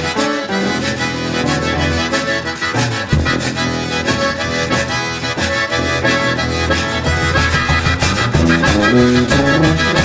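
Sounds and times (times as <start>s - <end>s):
zydeco band playing: 0.0s - 10.0s.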